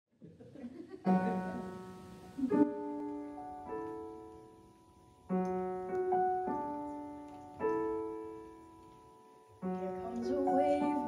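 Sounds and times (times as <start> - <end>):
piano chord: 1.1 - 11.0
woman singing: 9.8 - 11.0.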